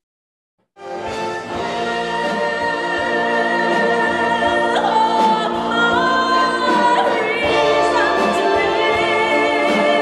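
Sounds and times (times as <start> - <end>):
orchestra playing: 0.8 - 10.0.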